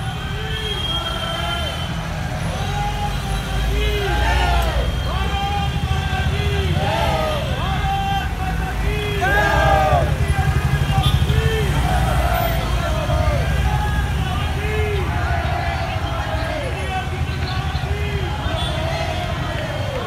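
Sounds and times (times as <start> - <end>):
people shouting: 2.5 - 20.0
cars driving past rumbling: 9.1 - 20.0.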